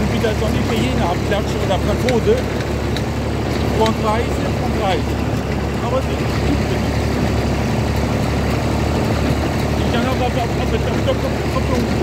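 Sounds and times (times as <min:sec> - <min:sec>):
tractor engine running: 0:00.0 - 0:12.0.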